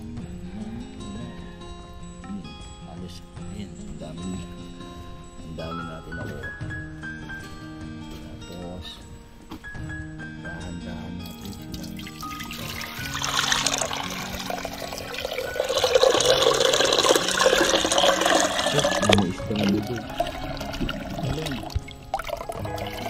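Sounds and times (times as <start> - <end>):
background music: 0.0 - 23.0
water splashing into aquarium: 11.4 - 23.0.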